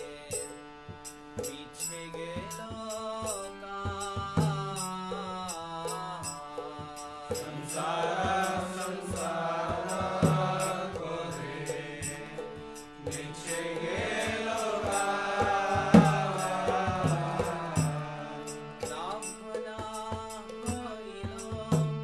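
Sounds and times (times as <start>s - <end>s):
held accompaniment tones: 0.0s - 22.0s
high ticking beat: 0.0s - 22.0s
man singing devotional song: 0.0s - 22.0s.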